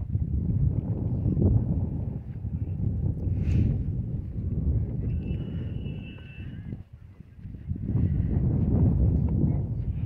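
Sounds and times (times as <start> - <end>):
footsteps on paved path: 0.0 - 10.0.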